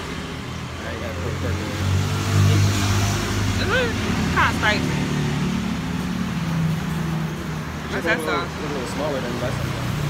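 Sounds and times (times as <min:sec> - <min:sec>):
road traffic engine hum: 0:00.0 - 0:10.0.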